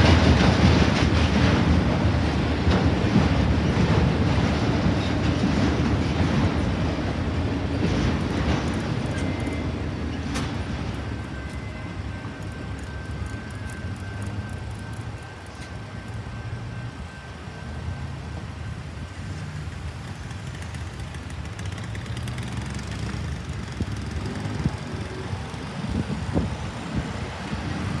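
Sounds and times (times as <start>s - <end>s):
vehicle engines idling: 18.5s - 28.0s
vehicles pulling away: 19.1s - 28.0s.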